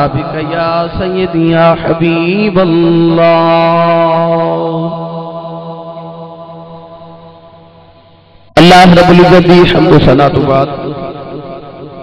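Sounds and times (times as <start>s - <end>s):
man chanting a long note: 0.0s - 7.4s.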